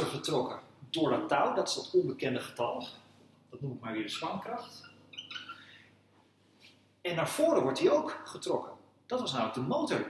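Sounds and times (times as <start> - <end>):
marker squeaking on whiteboard: 4.2 - 5.8.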